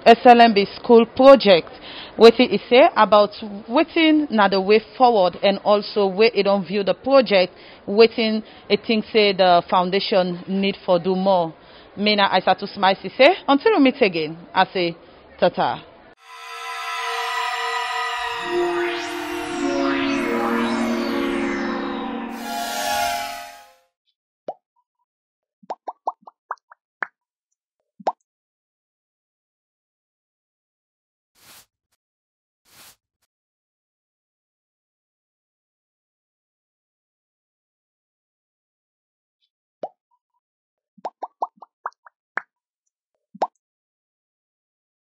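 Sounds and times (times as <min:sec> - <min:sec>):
outro music: 0:16.2 - 0:23.8
cartoon plop pops rising in pitch: 0:25.7 - 0:27.1, 0:41.0 - 0:42.5, 0:43.4 - 0:43.6.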